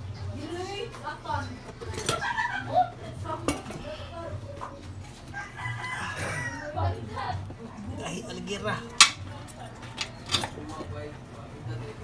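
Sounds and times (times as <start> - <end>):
rooster crowing: 5.3 - 7.0.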